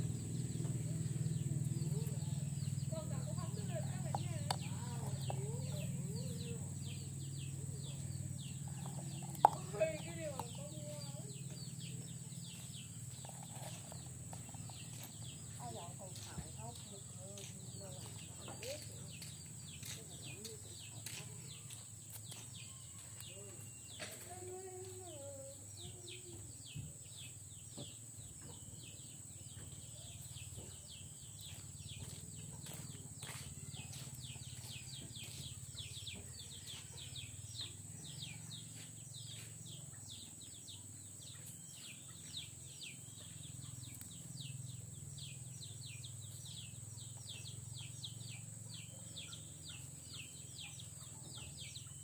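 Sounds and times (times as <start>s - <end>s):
chickens clucking: 3.5s - 23.2s.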